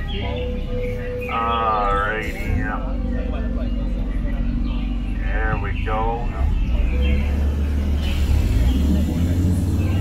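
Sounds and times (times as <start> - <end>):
boat motor rumbling: 0.0 - 10.0
faint voices: 0.0 - 10.0.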